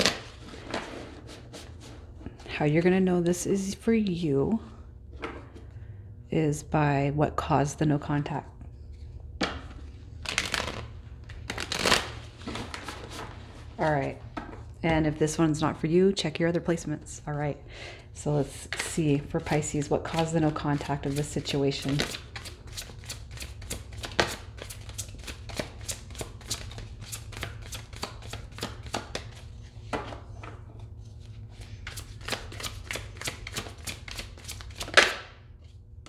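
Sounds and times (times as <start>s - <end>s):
steady low hum: 0.0s - 36.0s
cards being shuffled: 10.2s - 13.4s, 19.4s - 29.9s, 31.2s - 35.8s.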